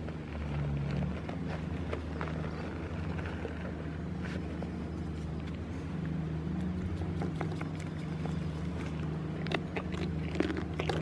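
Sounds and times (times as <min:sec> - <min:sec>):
goat chewing: 0:06.5 - 0:11.0
crisp crunches: 0:08.7 - 0:11.0.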